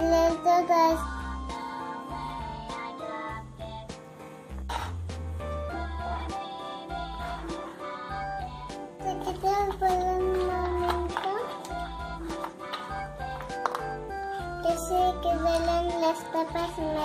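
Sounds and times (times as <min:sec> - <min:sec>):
background music with bass line: 0:00.0 - 0:06.4.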